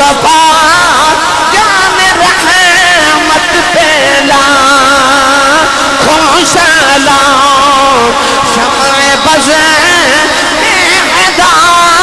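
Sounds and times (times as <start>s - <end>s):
man chanting through loudspeaker: 0.0s - 12.0s.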